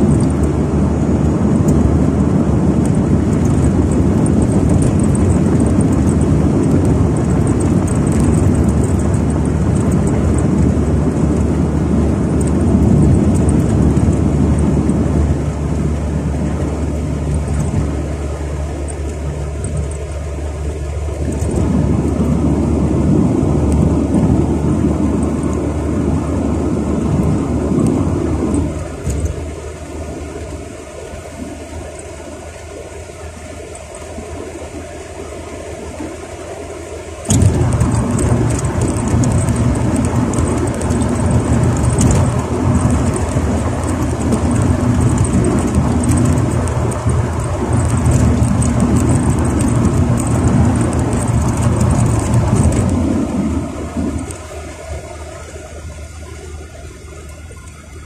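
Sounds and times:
car cabin road and engine noise: 0.0s - 58.0s.

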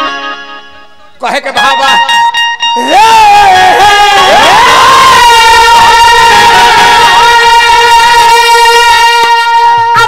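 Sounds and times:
man singing through a microphone: 2.8s - 10.0s.

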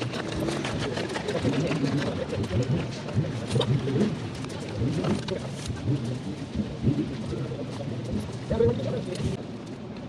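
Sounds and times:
murmur of voices: 0.0s - 9.4s.

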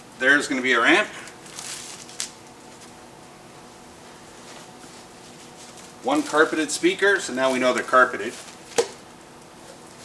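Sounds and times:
faint room hum: 0.0s - 10.0s
plastic bag rustling: 1.4s - 2.9s, 4.4s - 9.0s.

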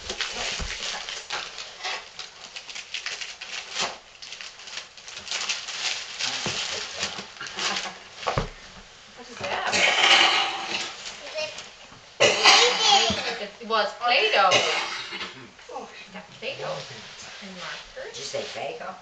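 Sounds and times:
packaging rustling and crinkling: 0.0s - 9.6s, 10.6s - 11.8s.

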